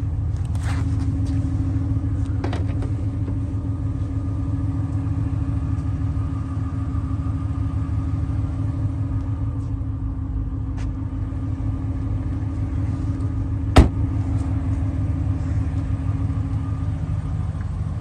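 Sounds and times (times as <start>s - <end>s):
car engine idling: 0.0s - 18.0s
car trunk lid thump: 13.7s - 14.0s.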